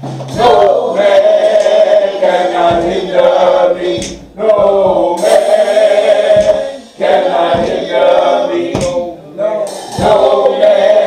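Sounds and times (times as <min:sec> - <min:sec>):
group singing gospel song: 0:00.3 - 0:11.0.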